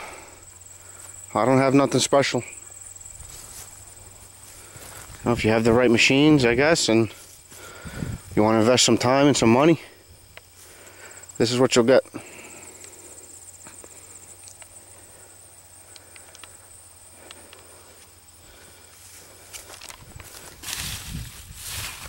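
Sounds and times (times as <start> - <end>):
faint insect trill: 0.0 - 22.0
footsteps through leafy plants: 3.0 - 5.9, 19.0 - 22.0.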